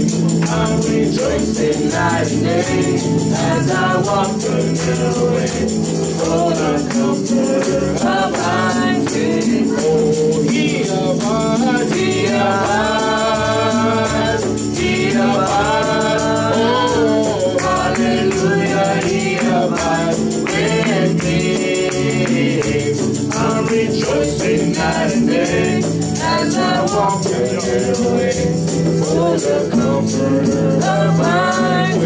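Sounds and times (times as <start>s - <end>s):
percussion beat: 0.0s - 32.0s
voices singing gospel: 0.0s - 32.0s.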